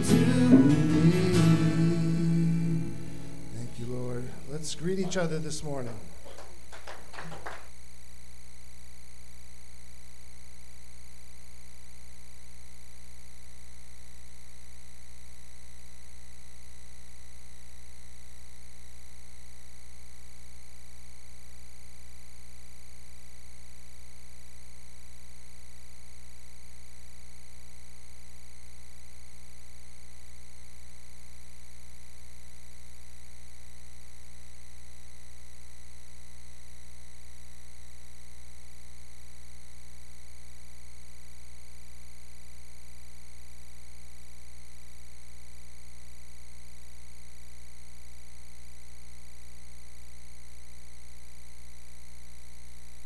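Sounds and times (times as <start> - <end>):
electrical mains hum: 0.0 - 53.0.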